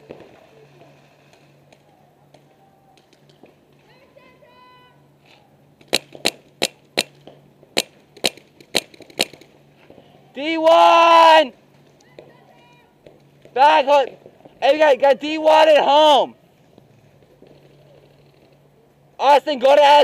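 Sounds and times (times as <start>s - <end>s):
paintball marker shots: 5.8s - 9.5s.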